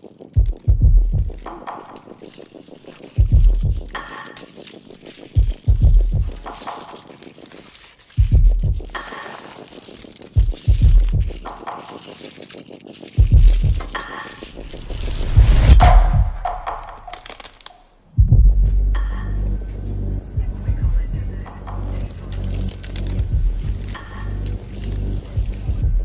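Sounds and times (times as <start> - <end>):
deep pulsing drone: 18.2 - 26.0
deep rumble: 18.2 - 26.0.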